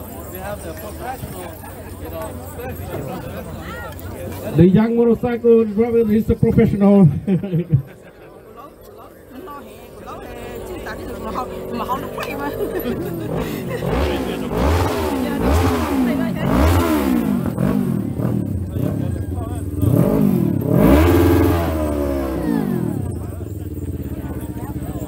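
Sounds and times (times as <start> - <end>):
motorcycle engine revving and idling: 0.0 - 25.0.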